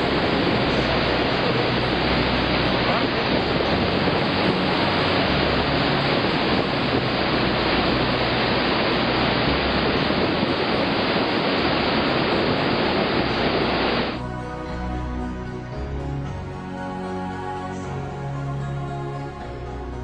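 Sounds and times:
waterfall rushing: 0.0 - 14.2.

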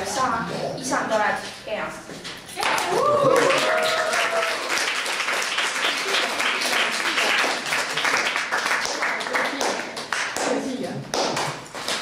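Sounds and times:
scattered hand claps: 2.6 - 12.0.

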